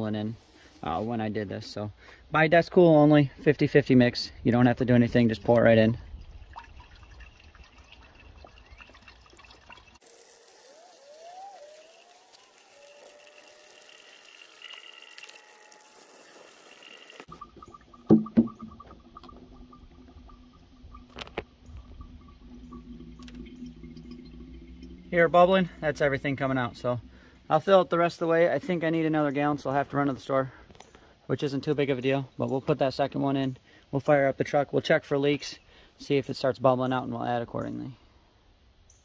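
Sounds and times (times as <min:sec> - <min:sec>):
liquid pouring through funnel: 0:04.8 - 0:29.4
sharp knocks: 0:18.1 - 0:18.9.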